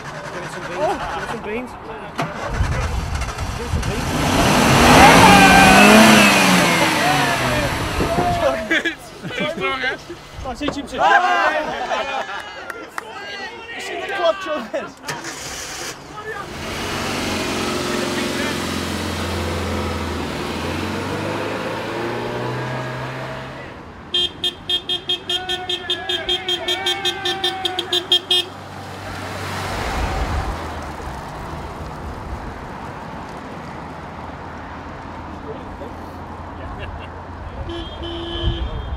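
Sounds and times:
road noise: 0.0s - 38.9s
car engine pulling away: 2.2s - 8.8s, 15.1s - 23.8s, 28.7s - 33.9s
car horn short blasts: 24.1s - 28.6s, 37.6s - 38.9s.

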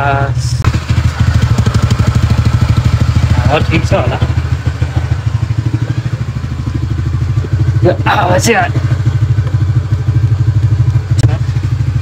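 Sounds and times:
scooter engine idling: 0.0s - 12.0s.

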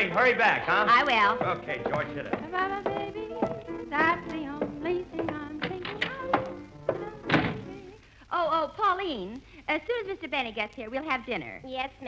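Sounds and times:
dance band playing: 0.0s - 7.8s
drum strikes: 0.7s - 7.7s.

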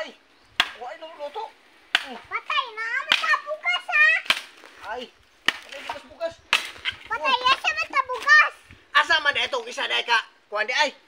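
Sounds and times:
machete chopping wood: 0.6s - 0.9s, 1.9s - 2.3s, 3.0s - 3.5s, 4.2s - 4.7s, 5.4s - 7.0s.

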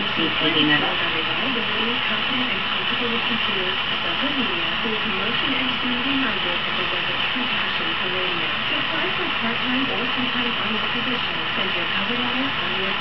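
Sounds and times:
person speaking: 0.0s - 13.0s.

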